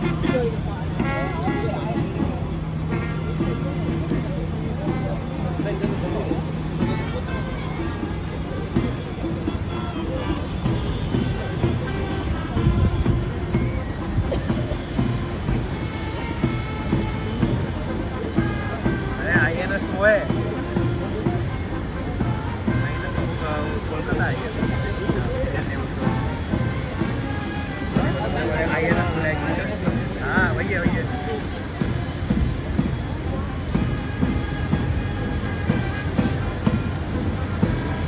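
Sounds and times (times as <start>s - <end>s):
crowd chatter: 0.0s - 38.0s
military band playing: 0.0s - 38.0s
road traffic: 0.0s - 38.0s.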